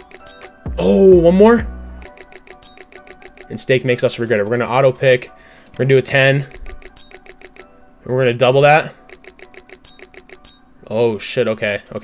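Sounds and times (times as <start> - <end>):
rapid short ticks: 2.0 - 5.8, 9.1 - 10.6.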